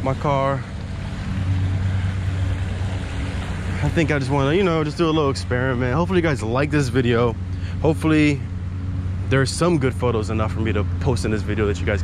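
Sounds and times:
low engine-like drone: 0:00.0 - 0:12.0.

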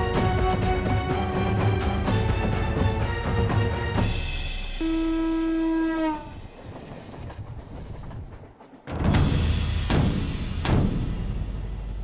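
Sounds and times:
train rumbling past: 0:00.2 - 0:12.0
train horn blast: 0:04.8 - 0:06.4.

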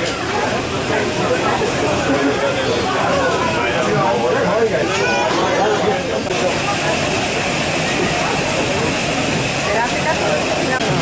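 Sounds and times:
chatter of visitors: 0:00.0 - 0:11.0.

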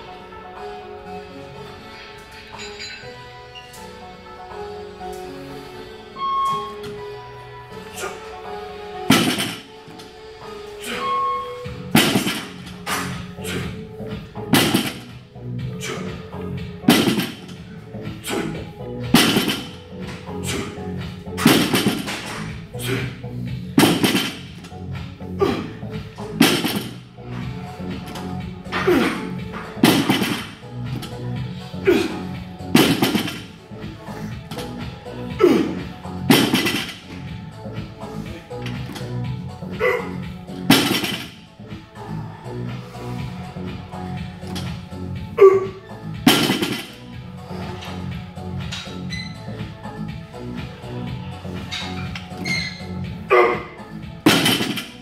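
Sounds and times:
background music: 0:00.0 - 0:55.0.

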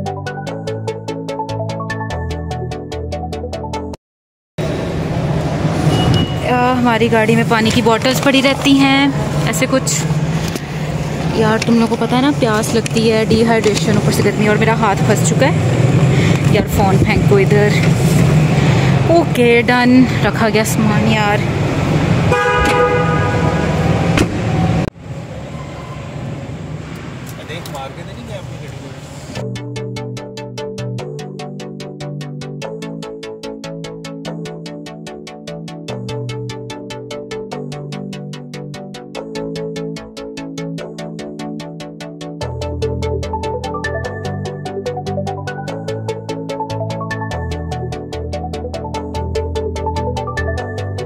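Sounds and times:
car engine idling: 0:04.6 - 0:29.4
traffic noise: 0:04.6 - 0:29.4
brief high tone: 0:05.8 - 0:06.8
vehicle horn: 0:22.3 - 0:24.6.

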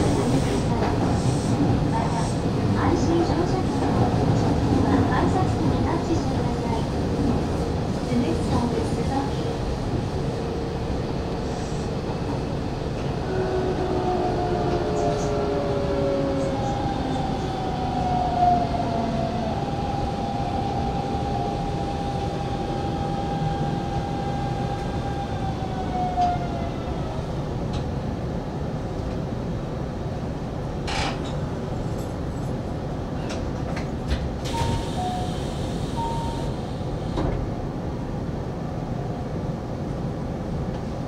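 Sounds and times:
wheels rumbling on rails: 0:00.0 - 0:38.2.

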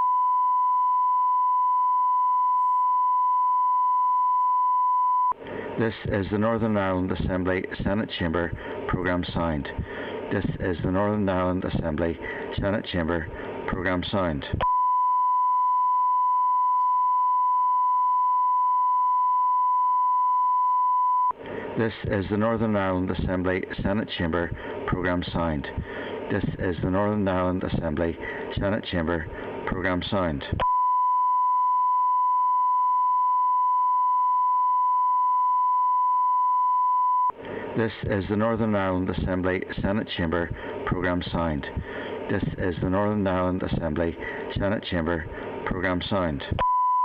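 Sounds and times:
steady pure tone beep: 0:00.0 - 0:05.4, 0:14.6 - 0:21.4, 0:30.6 - 0:37.4, 0:46.6 - 0:47.0
steady pure test tone: 0:00.0 - 0:47.0.

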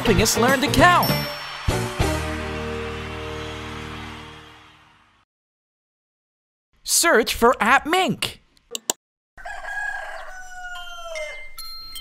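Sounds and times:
chime notes: 0:00.4 - 0:02.6, 0:10.8 - 0:12.0
rooster crowing: 0:09.4 - 0:11.6.

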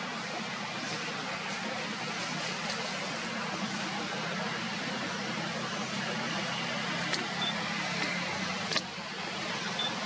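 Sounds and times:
high beep-like tone: 0:09.8 - 0:10.0.

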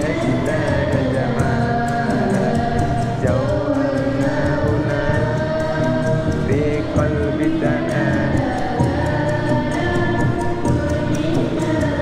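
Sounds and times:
hand drums: 0:00.0 - 0:12.0
person singing: 0:00.0 - 0:12.0
string instruments: 0:00.0 - 0:12.0.

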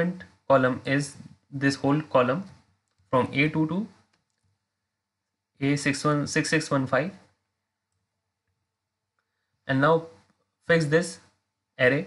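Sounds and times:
man's voice: 0:00.0 - 0:02.6, 0:03.2 - 0:04.0, 0:09.7 - 0:12.0.

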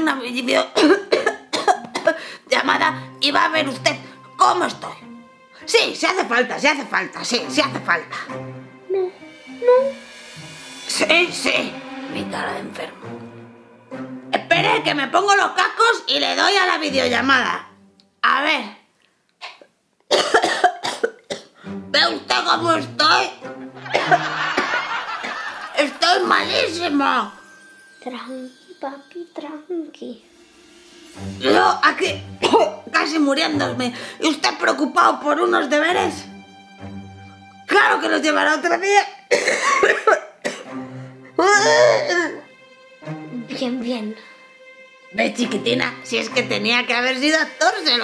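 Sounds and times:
woman coughing: 0:00.8 - 0:02.3, 0:19.4 - 0:21.6, 0:23.9 - 0:24.3, 0:32.4 - 0:32.8, 0:39.3 - 0:40.7.

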